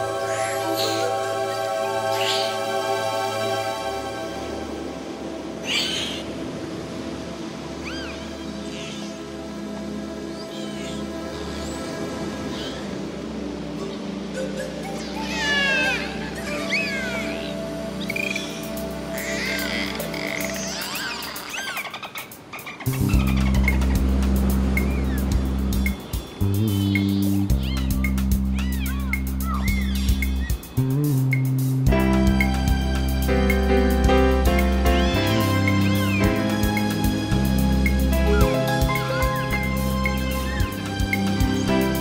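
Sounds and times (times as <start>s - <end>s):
deep sustained chord: 0.0s - 5.7s
ambient synthesizer music: 0.0s - 21.6s, 22.3s - 42.0s
dolphin squeal: 7.8s - 9.1s, 14.4s - 23.8s, 26.8s - 30.6s
dolphin whistle: 14.3s - 22.0s.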